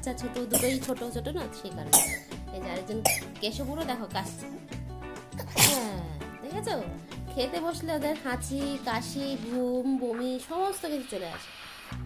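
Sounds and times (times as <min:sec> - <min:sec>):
woman talking: 0:00.0 - 0:04.5, 0:05.7 - 0:11.5
background music with low beat: 0:00.0 - 0:10.6.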